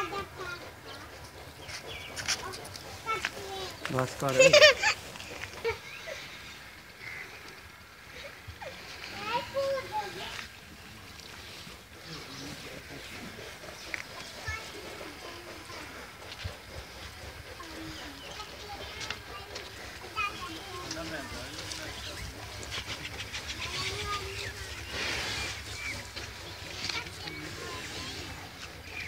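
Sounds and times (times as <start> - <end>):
faint voices talking: 5.9 - 29.0.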